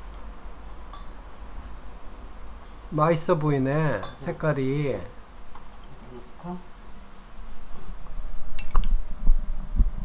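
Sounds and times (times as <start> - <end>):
brush clinking against ceramic bowl: 3.9 - 4.4.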